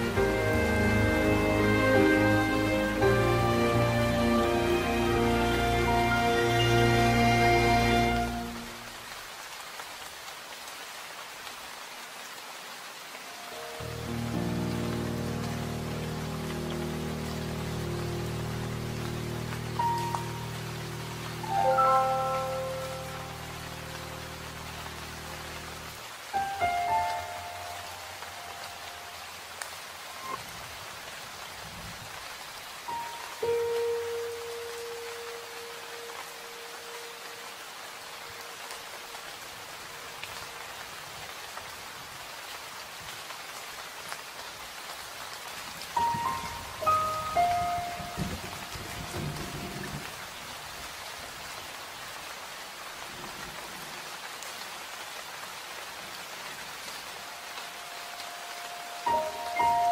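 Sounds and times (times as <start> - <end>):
soft music notes: 0.0 - 9.0, 13.3 - 30.7, 32.8 - 38.8, 45.9 - 50.2, 57.1 - 59.9
steady rain falling: 0.0 - 59.9.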